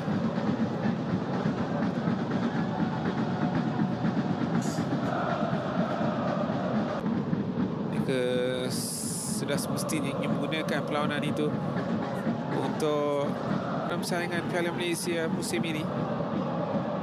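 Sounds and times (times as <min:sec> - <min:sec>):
crowd chanting: 0:00.0 - 0:07.1, 0:07.7 - 0:17.0
stadium crowd din: 0:00.0 - 0:17.0.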